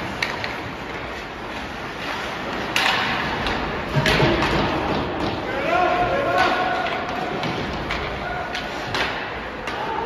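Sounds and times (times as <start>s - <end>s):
hockey sticks and puck knocking: 0.0s - 10.0s.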